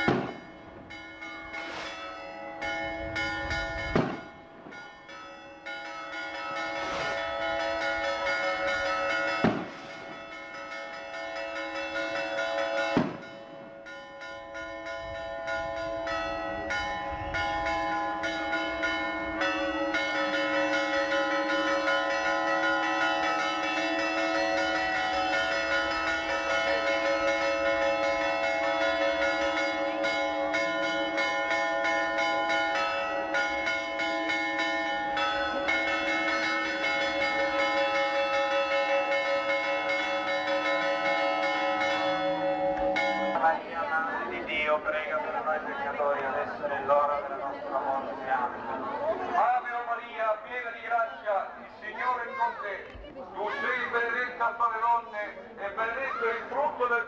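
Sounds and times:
church bells ringing: 0.0 - 47.3.

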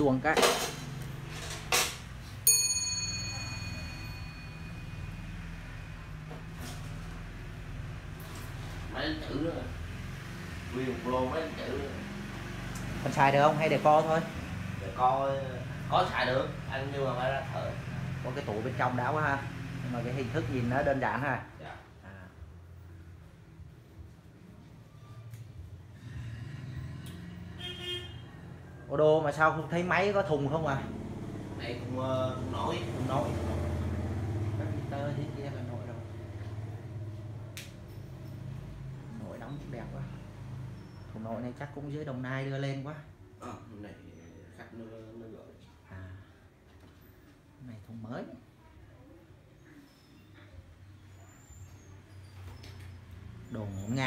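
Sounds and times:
road traffic rumble: 0.0 - 47.6, 48.4 - 54.0
clock bell striking: 2.5 - 5.4
vehicle horn toot: 27.5 - 28.4.

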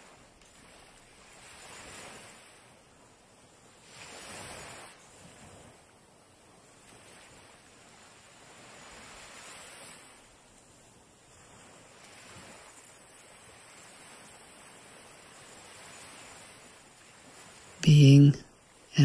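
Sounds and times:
small waves washing onto shore: 0.0 - 19.0.

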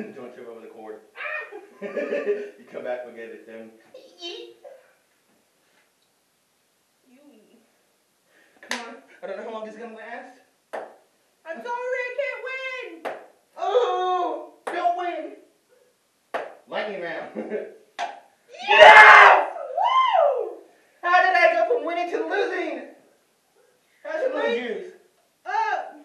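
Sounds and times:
loud shout: 1.2 - 1.6, 11.6 - 15.0, 18.5 - 21.8, 25.5 - 26.0
people talking and exclaiming: 1.2 - 2.4, 18.5 - 22.8
cry rising and falling in pitch: 18.5 - 20.6.

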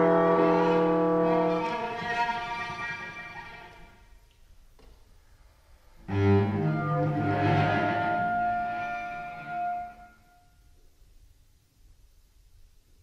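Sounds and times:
bassoon and cello chamber music: 0.0 - 3.8, 6.0 - 10.3.

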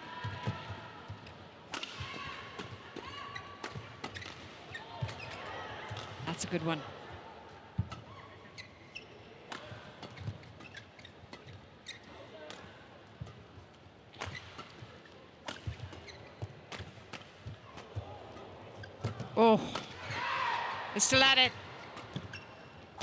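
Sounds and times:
racket hitting shuttlecock: 1.7 - 2.8, 15.4 - 16.1.

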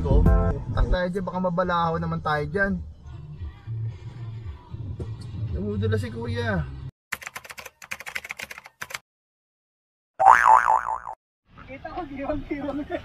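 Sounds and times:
loud wobbling boing: 10.2 - 11.2.

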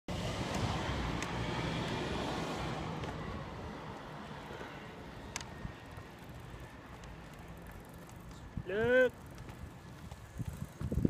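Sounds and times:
faint ticks: 5.3 - 5.6.

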